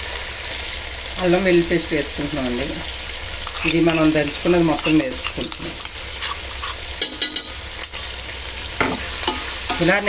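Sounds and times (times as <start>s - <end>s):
chicken sizzling in oil: 0.0s - 10.0s
utensils scraping pan: 3.4s - 8.2s.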